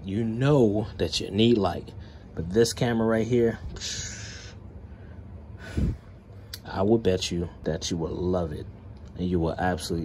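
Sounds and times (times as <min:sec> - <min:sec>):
man exhaling with hiss: 0:03.8 - 0:04.6, 0:05.6 - 0:06.1.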